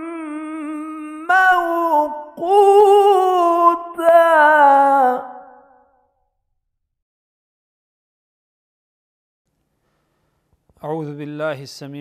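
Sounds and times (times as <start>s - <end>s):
person reciting melodically: 0.0s - 5.8s.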